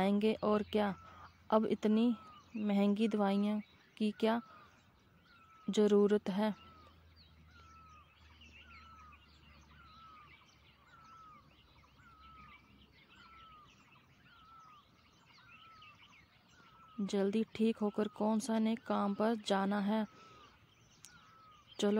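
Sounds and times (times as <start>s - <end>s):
birds twittering: 0.0s - 21.9s.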